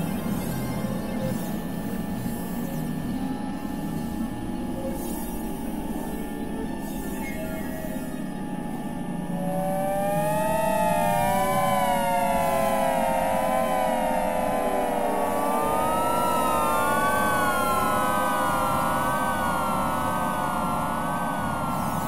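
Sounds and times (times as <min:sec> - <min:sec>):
low noisy drone: 0:00.0 - 0:22.0.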